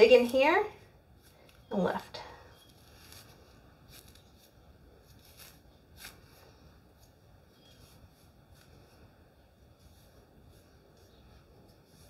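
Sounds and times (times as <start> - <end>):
hair pick rustling in hair: 0.0 - 12.0.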